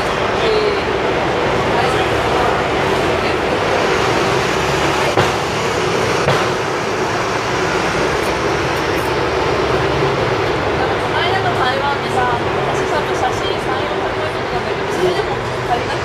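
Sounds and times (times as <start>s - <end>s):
traffic idling and passing: 0.0s - 16.0s.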